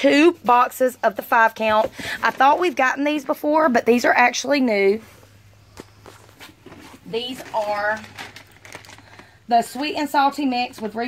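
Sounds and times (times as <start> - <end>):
low steady hum: 0.0 - 11.0
faint footsteps: 5.0 - 7.2.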